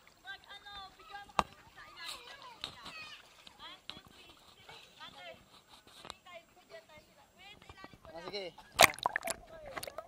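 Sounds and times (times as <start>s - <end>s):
voices in a swimming pool: 0.0s - 10.0s
water splashing: 8.7s - 10.0s.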